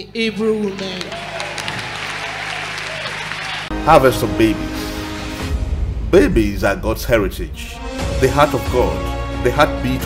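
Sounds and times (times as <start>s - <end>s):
congregation applauding: 0.6s - 4.2s.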